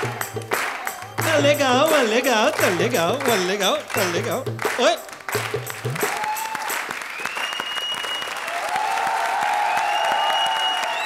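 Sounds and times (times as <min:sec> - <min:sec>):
background music held notes: 0:00.0 - 0:06.9
song beats: 0:00.0 - 0:07.0
audience applauding: 0:00.0 - 0:11.0.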